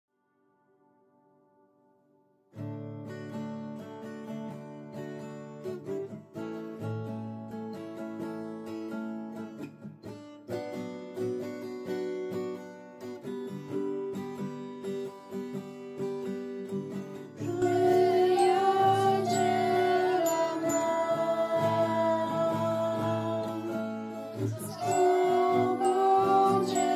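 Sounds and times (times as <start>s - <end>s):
acoustic guitar playing: 1.0s - 26.9s.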